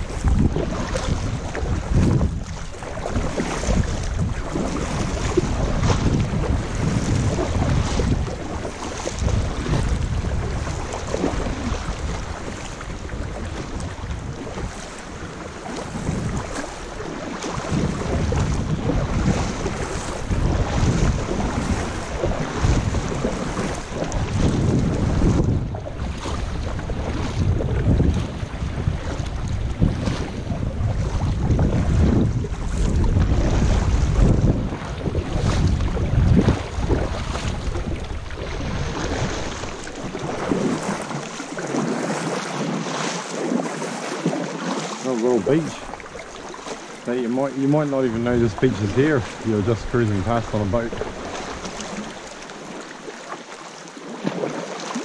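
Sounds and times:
wind buffeting microphone: 0.0s - 44.4s, 45.0s - 52.9s
water splashing from kayak paddling: 0.0s - 55.0s.

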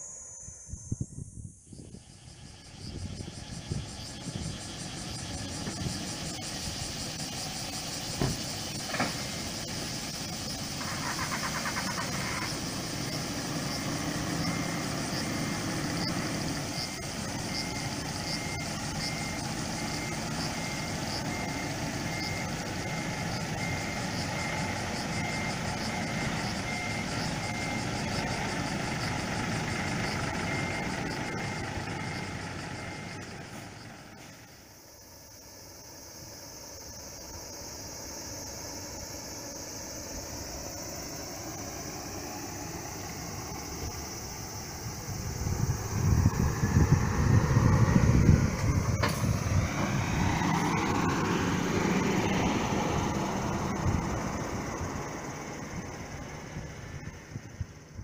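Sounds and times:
reversing beeper: 0.0s - 35.0s, 40.3s - 57.5s
diesel coach engine running: 1.8s - 58.0s.

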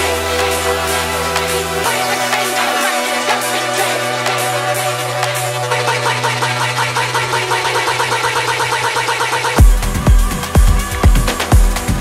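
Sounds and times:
fast repeating synth pattern: 9.5s - 12.0s.

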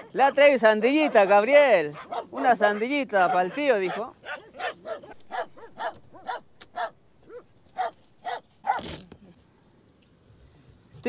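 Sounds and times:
small dogs yipping: 0.0s - 9.0s.

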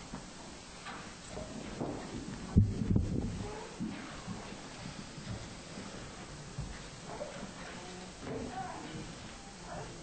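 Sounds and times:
dull low thuds: 2.0s - 3.4s.

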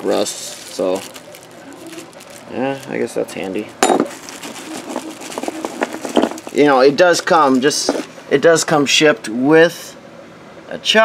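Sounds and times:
plastic bags crinkling: 0.0s - 8.1s.

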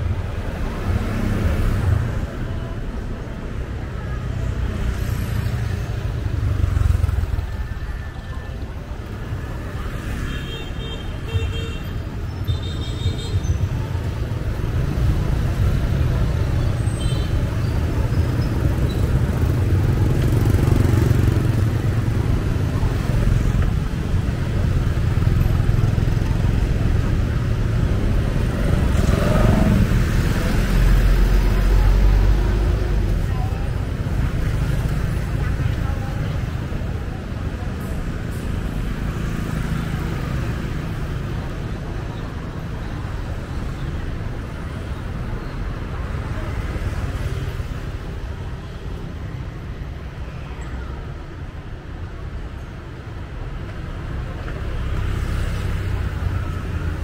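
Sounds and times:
street traffic engine rumble: 0.0s - 57.0s.

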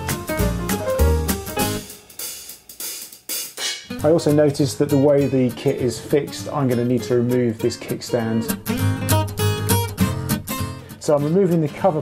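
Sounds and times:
hi-hat and cymbal music: 0.0s - 8.3s.

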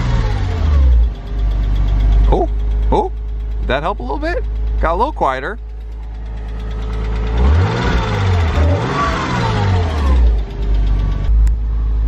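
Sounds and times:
car engine idling and revving: 0.0s - 12.0s
engine knock: 0.0s - 12.0s.

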